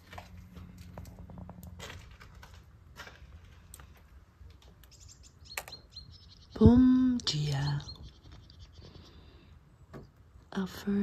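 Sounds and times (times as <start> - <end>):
low steady hum: 0.0 - 11.0
bird chirps: 4.8 - 9.4.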